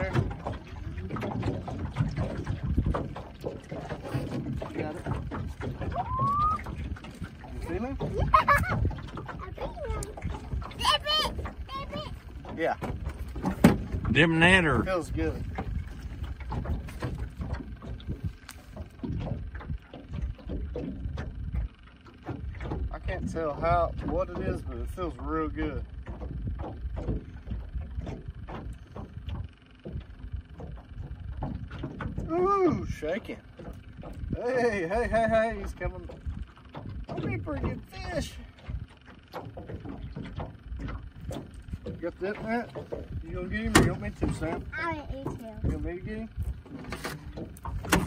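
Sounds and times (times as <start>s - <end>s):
water splashing against metal boat: 0.0s - 48.0s
wind rumbling on microphone: 0.0s - 48.0s.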